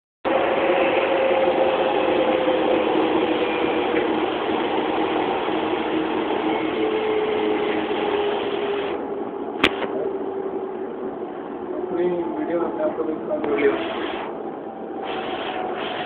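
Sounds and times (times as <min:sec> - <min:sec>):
train rumbling: 0:00.3 - 0:16.0.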